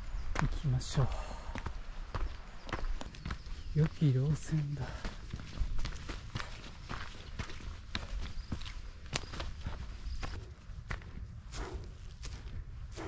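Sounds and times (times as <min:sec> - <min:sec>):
footsteps on a trail: 0:00.0 - 0:13.0.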